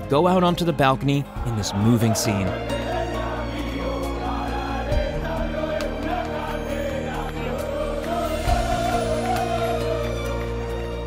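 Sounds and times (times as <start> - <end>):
steady sustained music: 0.0 - 11.0
many voices singing together: 1.3 - 11.0.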